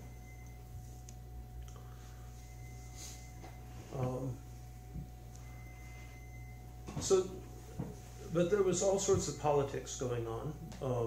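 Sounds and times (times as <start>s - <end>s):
faint high whine: 0.0s - 11.0s
steady low hum: 0.0s - 11.0s.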